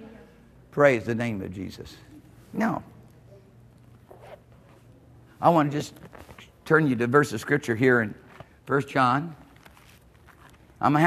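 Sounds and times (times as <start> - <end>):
low steady hum: 0.0 - 11.0
pages turning: 5.8 - 6.6, 9.3 - 11.0.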